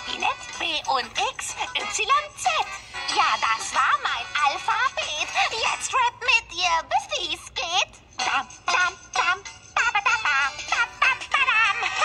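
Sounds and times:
cartoon song from tv speaker: 0.0s - 12.0s.

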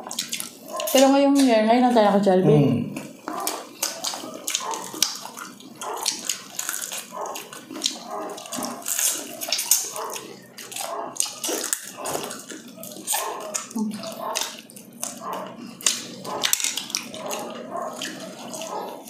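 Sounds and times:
crunching of fried skin: 0.0s - 1.1s, 3.0s - 19.0s
lip-smacking: 0.0s - 1.6s, 3.0s - 19.0s
wet chewing: 0.0s - 1.6s, 3.0s - 19.0s.

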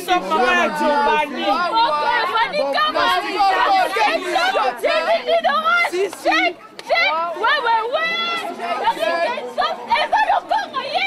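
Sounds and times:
women chattering excitedly: 0.0s - 11.0s.

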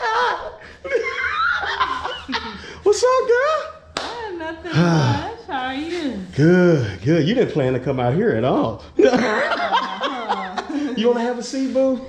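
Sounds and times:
man and woman laughing: 0.0s - 2.8s, 9.0s - 11.4s.

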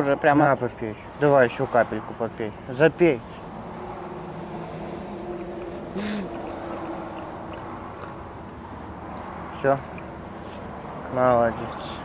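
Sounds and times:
low motor hum: 3.4s - 10.3s
dog lapping water: 4.8s - 10.0s.

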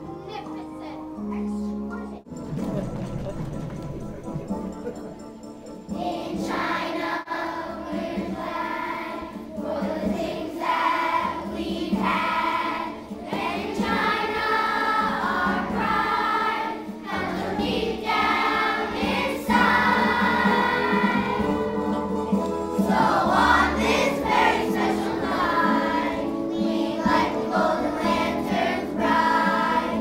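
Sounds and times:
musical accompaniment: 0.0s - 30.0s
children's choir singing: 5.6s - 30.0s.

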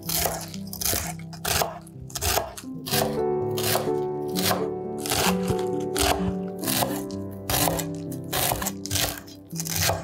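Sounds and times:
background music: 0.0s - 10.0s
knife cutting herbs on board: 0.0s - 10.0s.

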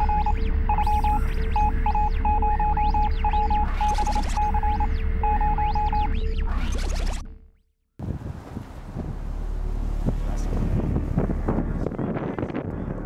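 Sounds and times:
swooping electronic whistles: 0.0s - 7.4s
rapid electronic beeps: 0.0s - 7.5s
deep rumble: 0.0s - 13.0s
low drone: 8.8s - 13.0s.

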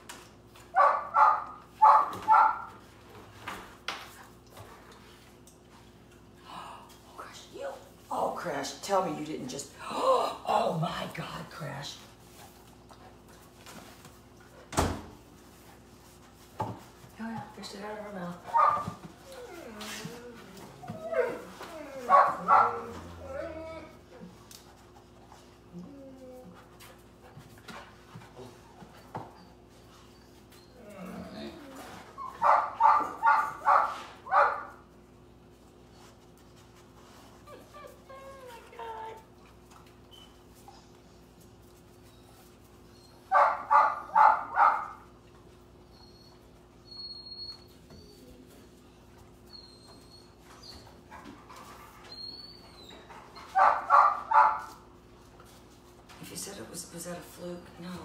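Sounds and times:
dog barking: 0.8s - 2.7s, 18.5s - 18.8s, 22.1s - 22.9s, 32.4s - 34.8s, 43.3s - 45.0s, 53.6s - 54.7s
dog whining: 18.5s - 24.4s, 25.7s - 26.6s, 28.4s - 33.8s, 37.4s - 39.2s, 42.1s - 44.7s, 45.8s - 54.6s.

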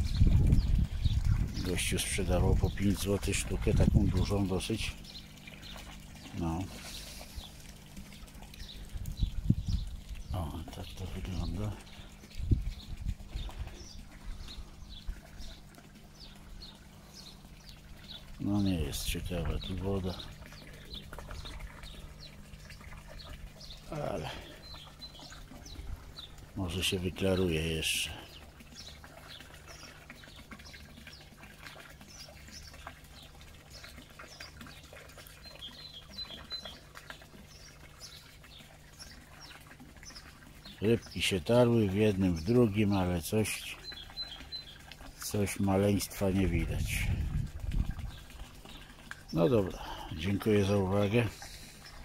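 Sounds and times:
pond pump humming: 0.0s - 52.0s
bird chirping: 8.5s - 31.3s, 32.1s - 41.6s, 42.2s - 46.8s.

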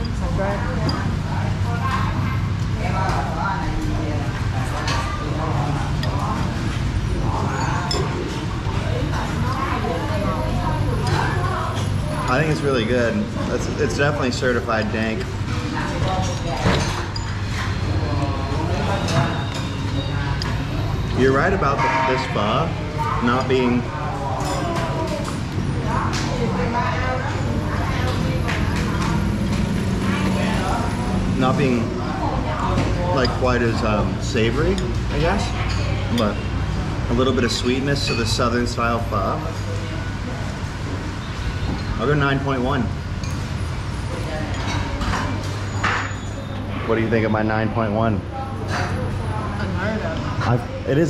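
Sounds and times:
distant chatter: 0.0s - 51.0s
faint voices: 0.0s - 51.0s.

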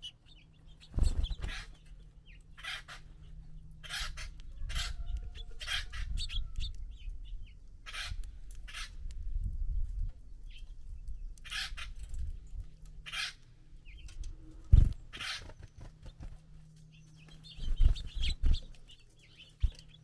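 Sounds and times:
birds pecking and cracking seed: 0.0s - 20.0s.

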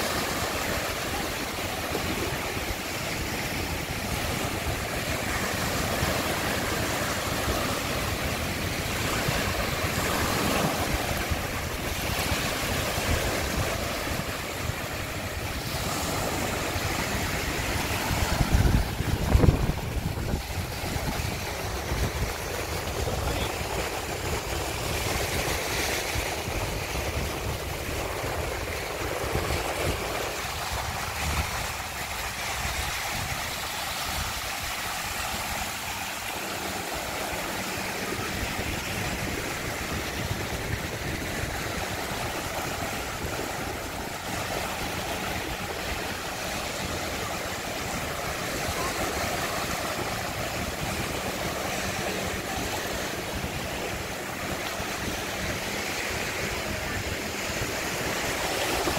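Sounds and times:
small waves washing on beach: 0.0s - 58.9s
wind buffeting microphone: 0.0s - 58.9s.

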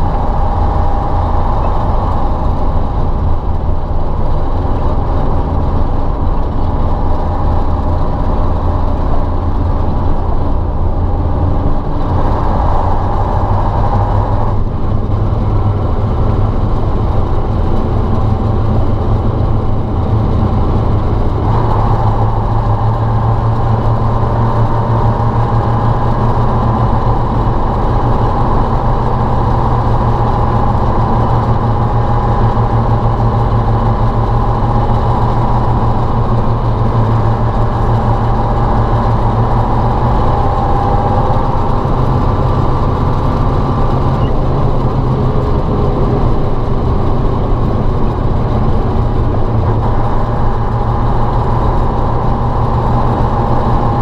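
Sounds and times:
diesel truck engine running: 0.0s - 54.0s.

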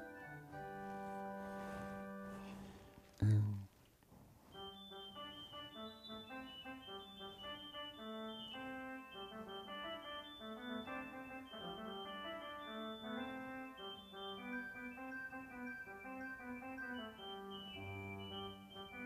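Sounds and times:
church organ with reedy tone: 0.0s - 3.0s, 4.5s - 19.0s.

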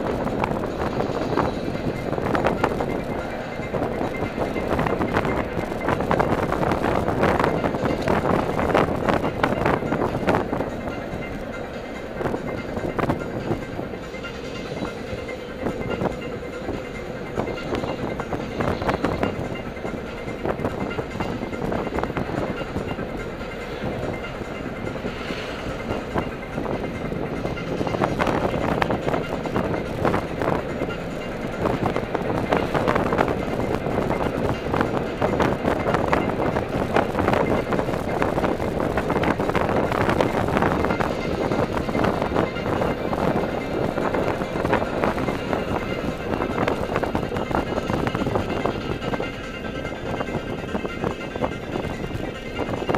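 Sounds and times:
rattles and bumps: 0.0s - 52.9s
road and engine noise in car: 0.0s - 52.9s.

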